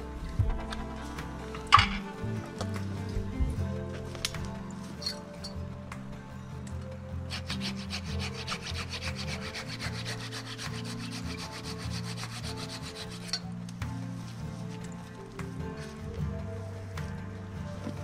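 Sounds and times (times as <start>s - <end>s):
hand saw cutting wood: 7.3s - 13.4s.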